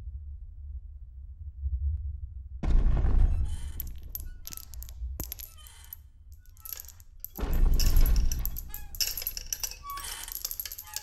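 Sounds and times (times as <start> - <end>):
clinks of small hard objects: 3.5 - 11.0.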